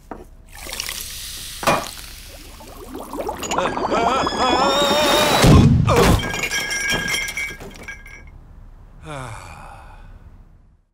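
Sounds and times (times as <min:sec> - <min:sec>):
teapot and teacups crashing: 0:02.8 - 0:08.3
crockery clattering and clinking: 0:06.0 - 0:08.3.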